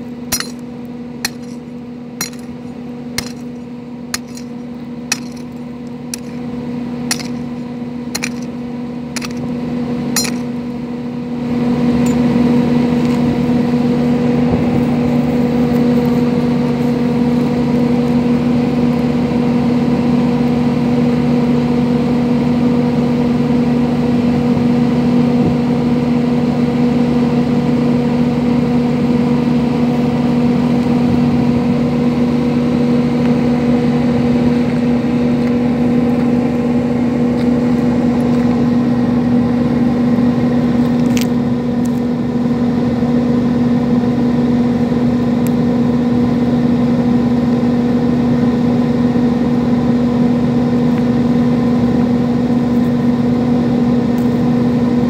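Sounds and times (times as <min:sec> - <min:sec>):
engine humming: 0:00.0 - 0:55.0
mattock striking stony ground: 0:00.3 - 0:08.6, 0:09.2 - 0:10.6.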